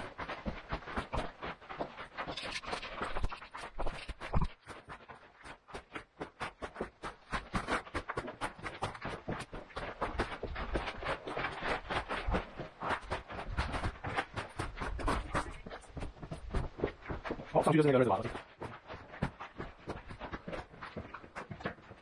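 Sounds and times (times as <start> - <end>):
footsteps crunching on gravel: 0.0 - 22.0
rustling: 0.0 - 22.0.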